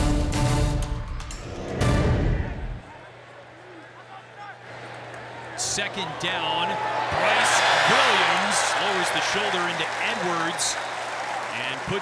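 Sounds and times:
loud transition music: 0:00.5 - 0:02.8.

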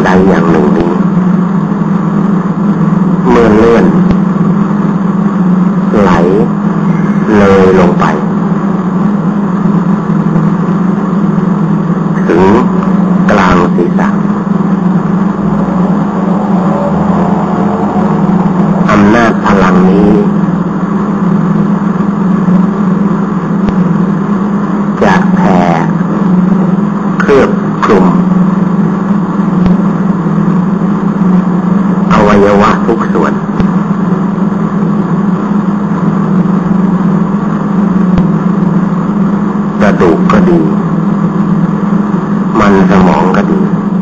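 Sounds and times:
loud steady low hum: 0:00.0 - 0:44.0.

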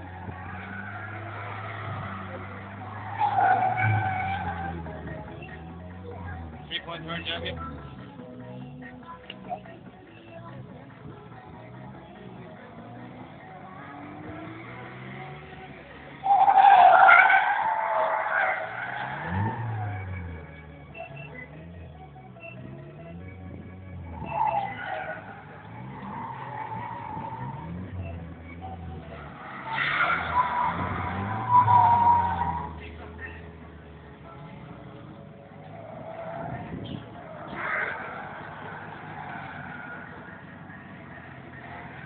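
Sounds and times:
tyres squealing: 0:00.0 - 0:05.7, 0:16.2 - 0:20.4, 0:24.1 - 0:28.3, 0:29.2 - 0:33.5
car engine revving: 0:00.0 - 0:42.0.

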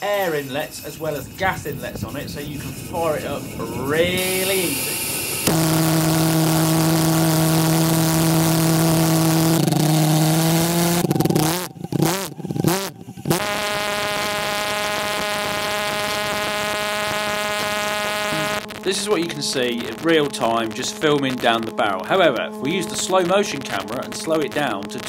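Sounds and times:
hiss: 0:00.0 - 0:08.1
pulse jet engine buzzing drone: 0:00.0 - 0:25.0.

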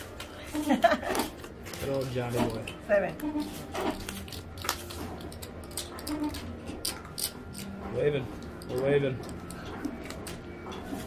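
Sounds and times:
playing cards clicking and swishing: 0:03.4 - 0:07.4.

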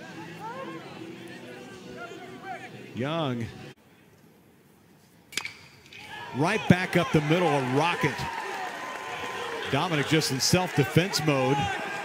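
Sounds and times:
metal bat hitting ball ping: 0:05.3 - 0:05.9.

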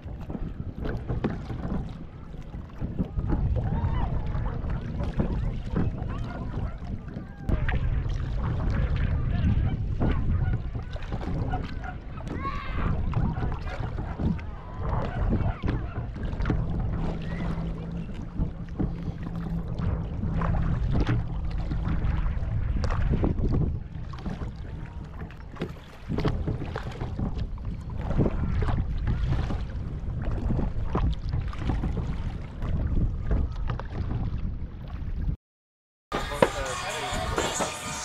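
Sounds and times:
water slapping kayak hull: 0:00.0 - 0:35.4, 0:36.1 - 0:38.0
wind rumbling on microphone: 0:00.0 - 0:35.4.

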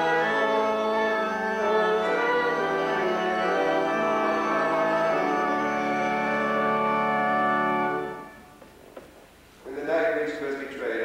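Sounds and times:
organ playing held chords: 0:00.0 - 0:08.6.

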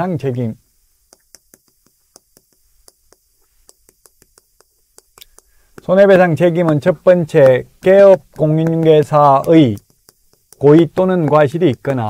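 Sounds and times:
chalk tapping on chalkboard: 0:01.0 - 0:12.0.

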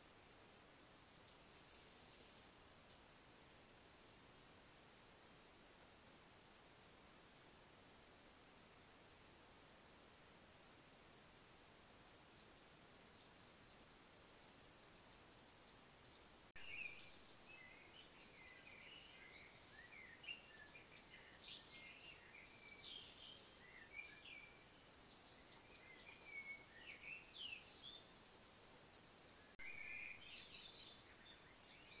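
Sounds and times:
steady hiss: 0:00.0 - 0:32.0
faint bird chirps and whistles: 0:16.0 - 0:32.0.

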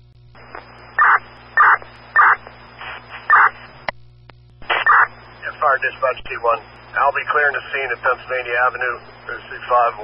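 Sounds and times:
harsh radio bursts: 0:00.4 - 0:03.9, 0:04.6 - 0:10.0
radio click: 0:00.4 - 0:05.2.

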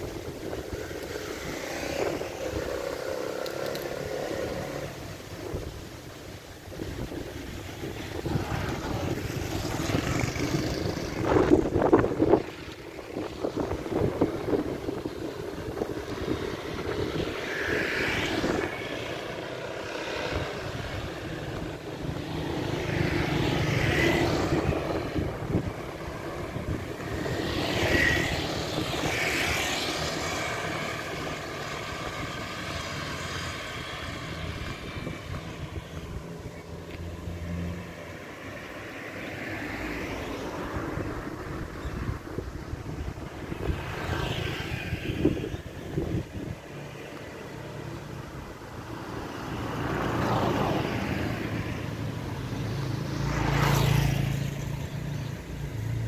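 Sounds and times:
low traffic rumble: 0:00.0 - 0:56.0
motor scooters passing: 0:00.0 - 0:56.0.

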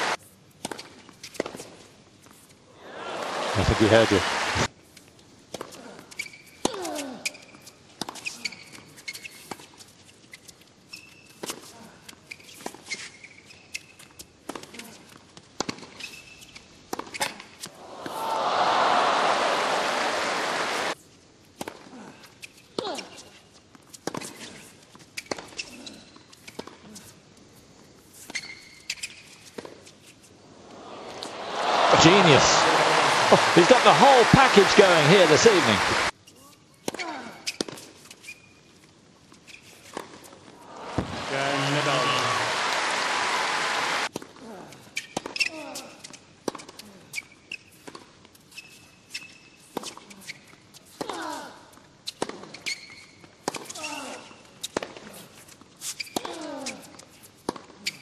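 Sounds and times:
crowd applauding: 0:02.8 - 0:04.7, 0:17.8 - 0:21.0, 0:30.7 - 0:36.1, 0:40.6 - 0:44.1.

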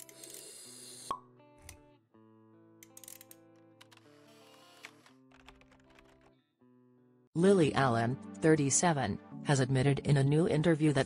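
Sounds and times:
small clicks: 0:02.8 - 0:06.3.

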